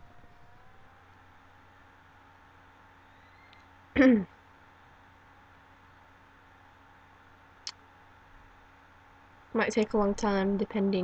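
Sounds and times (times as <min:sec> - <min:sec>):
low hum: 0:00.0 - 0:11.0
thin steady whine: 0:00.0 - 0:11.0.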